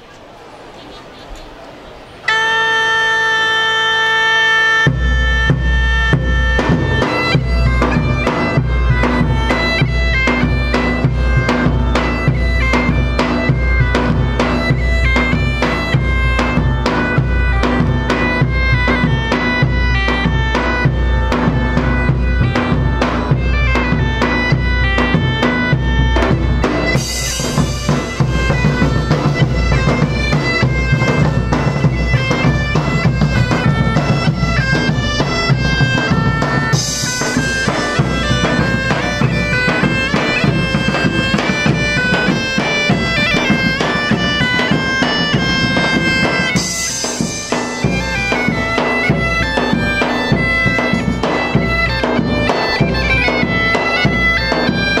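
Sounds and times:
bagpipes playing over drone: 2.2 - 55.0
big drums beating: 4.9 - 55.0.

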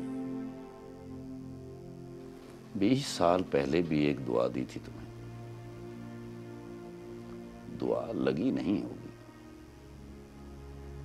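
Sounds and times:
soft sad background music: 0.0 - 11.0.

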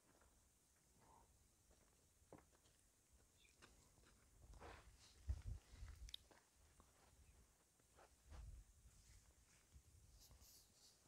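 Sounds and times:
faint scratchy rustles: 6.8 - 11.0.

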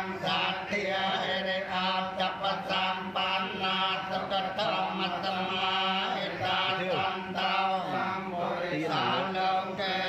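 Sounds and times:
group chanting: 0.0 - 10.0.

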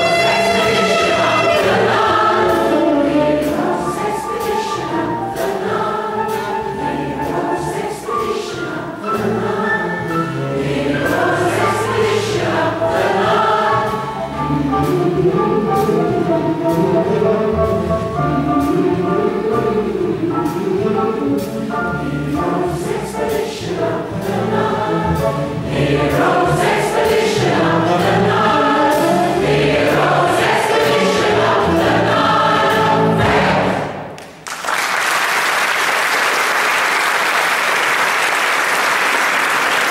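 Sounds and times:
choir singing with band: 0.0 - 34.2
audience applause: 34.2 - 39.9.

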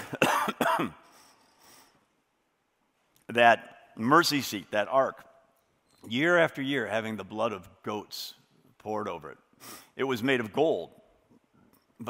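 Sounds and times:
man coughing: 0.0 - 1.1.

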